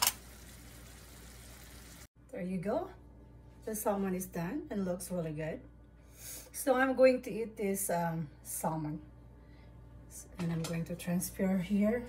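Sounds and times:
fish sizzling in a frying pan: 0.0s - 2.1s.

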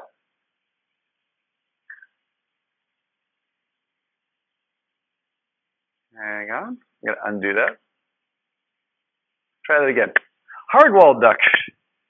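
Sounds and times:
faint recording hiss: 0.0s - 12.0s.

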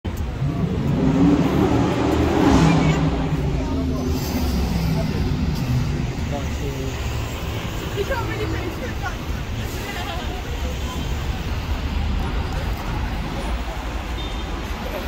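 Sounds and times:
city street traffic: 0.0s - 15.0s
people's voices: 0.1s - 15.0s.

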